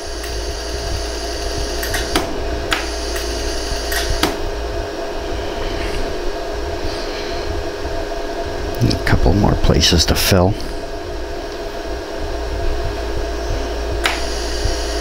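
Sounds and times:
steady machine hum: 0.0s - 15.0s
laser welder clicks: 1.0s - 4.4s, 14.0s - 14.4s.

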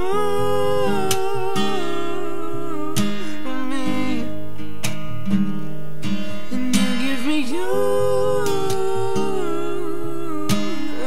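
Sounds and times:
man singing a long note: 0.0s - 4.3s
acoustic guitar strumming: 0.0s - 11.0s.

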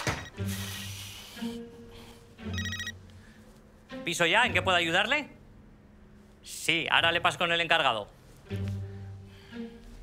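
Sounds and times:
phone ringtone: 2.5s - 3.0s.

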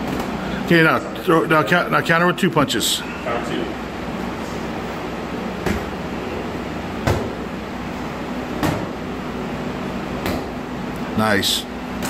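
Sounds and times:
steady low hum: 0.0s - 12.0s
boxing gloves hitting mitts: 5.5s - 6.0s, 6.9s - 7.5s, 8.4s - 9.1s, 10.1s - 10.6s.

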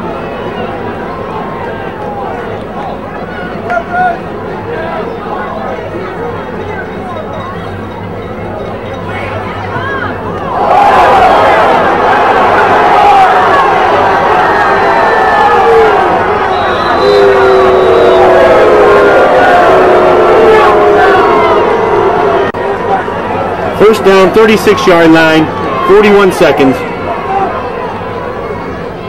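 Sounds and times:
crowd cheering and yelling: 0.0s - 29.0s.

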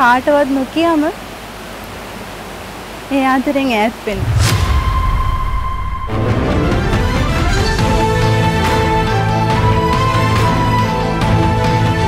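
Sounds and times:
flowing water rushing: 0.0s - 11.3s.

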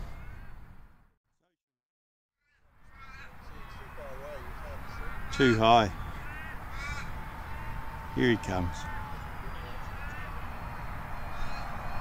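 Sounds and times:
bird calls: 2.4s - 12.0s.

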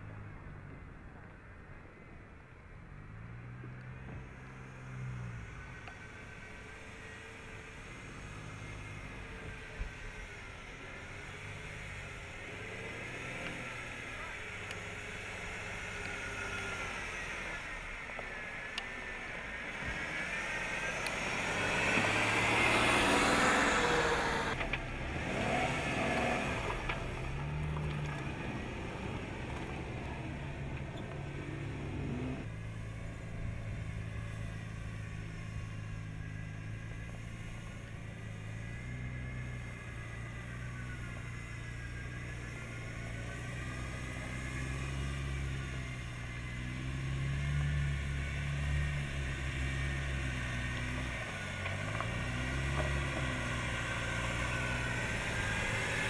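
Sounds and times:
engine running at low speed: 0.0s - 56.0s.

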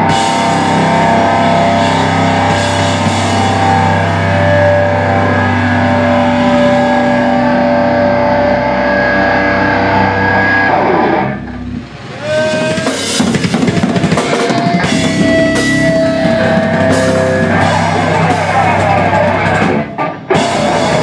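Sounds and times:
drum kit fast hits: 0.0s - 7.5s, 12.0s - 21.0s
distorted electric guitars: 0.0s - 21.0s
hardcore band playing: 0.0s - 21.0s.

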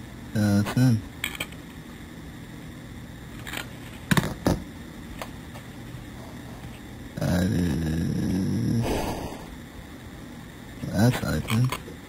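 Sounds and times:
steady low hum: 4.6s - 11.4s.

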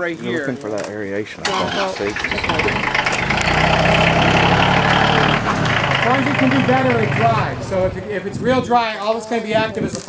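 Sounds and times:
tractor engine running: 1.4s - 8.7s.

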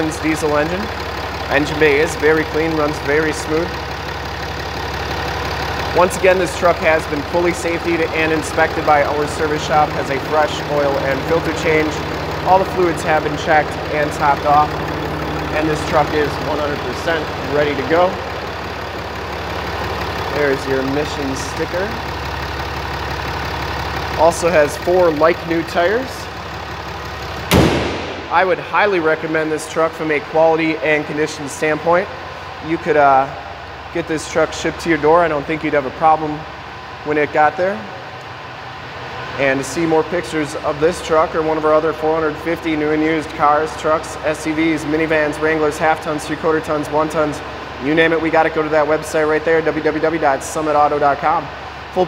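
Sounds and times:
diesel engine idling: 0.0s - 52.0s
car hood slamming shut: 27.5s - 28.4s.

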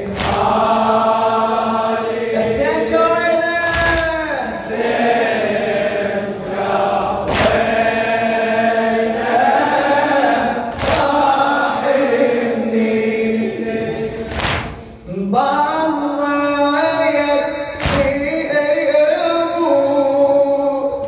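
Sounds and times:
men's voices in chorus: 0.0s - 2.9s, 3.7s - 14.7s
man chanting: 2.3s - 4.7s, 15.0s - 21.0s.

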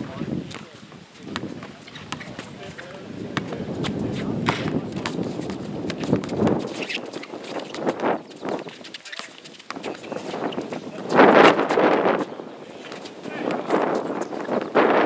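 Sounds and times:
running footsteps on court: 0.0s - 15.0s
basketball bouncing on hard court: 3.3s - 3.6s, 4.4s - 8.8s.

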